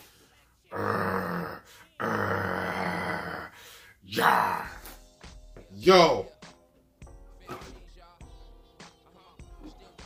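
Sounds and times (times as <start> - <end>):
man imitating lion roar: 0.7 - 5.0.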